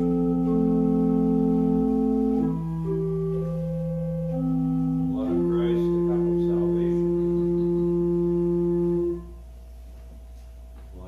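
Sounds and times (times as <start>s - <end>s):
church organ low note: 0.0s - 9.5s.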